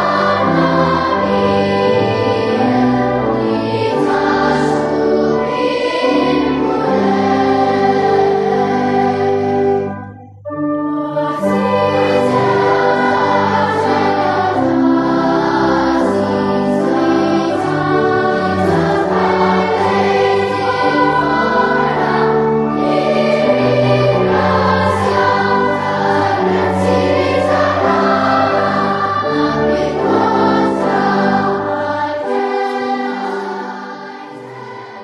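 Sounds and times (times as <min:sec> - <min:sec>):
choir singing a hymn: 0:00.0 - 0:10.2, 0:10.8 - 0:35.0.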